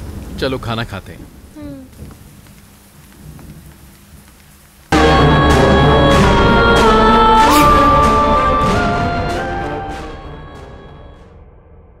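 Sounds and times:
loud music: 5.0s - 11.3s.

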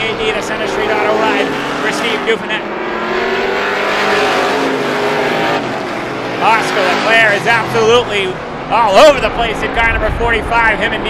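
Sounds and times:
race car engines at speed: 0.0s - 11.0s.

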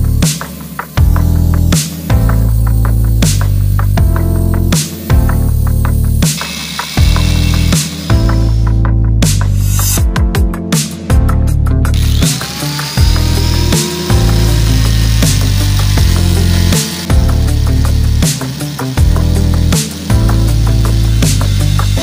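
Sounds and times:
electronic music with bass beat: 0.0s - 22.0s
angle grinder sanding: 0.3s - 8.7s, 11.9s - 22.0s.

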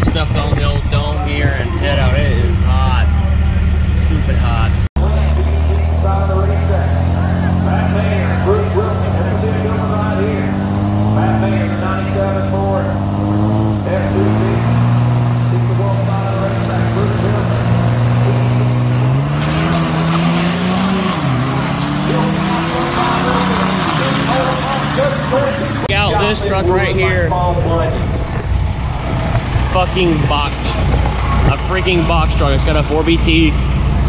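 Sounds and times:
diesel truck engines revving: 0.0s - 34.0s.

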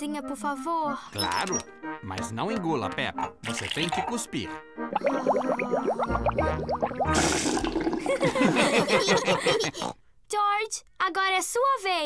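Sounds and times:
child gargling mouthwash: 5.0s - 8.3s
splashy spit: 5.0s - 8.3s.

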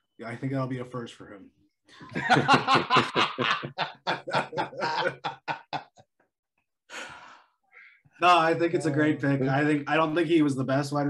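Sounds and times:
men laughing: 1.9s - 6.3s.

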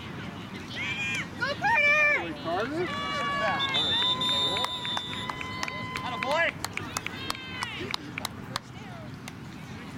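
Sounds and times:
many voices shouting outdoors: 0.0s - 9.1s.

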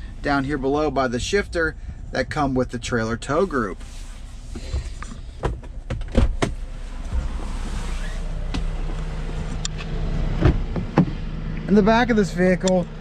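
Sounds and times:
knocks and clicks climbing out of car: 4.6s - 7.4s, 8.5s - 11.2s.

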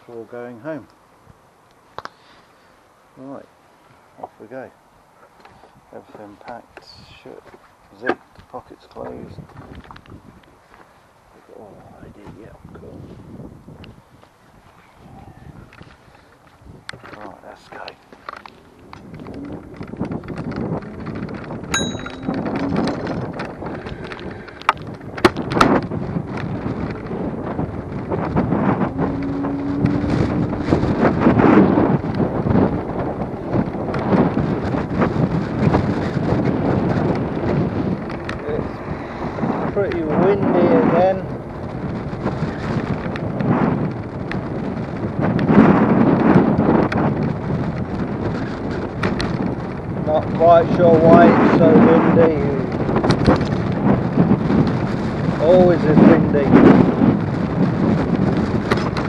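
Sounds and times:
wind gusting on microphone: 0.0s - 59.0s
high ding: 21.7s - 22.4s.

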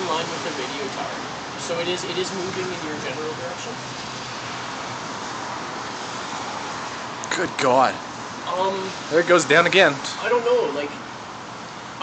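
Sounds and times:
steady rushing background noise: 0.0s - 12.0s.

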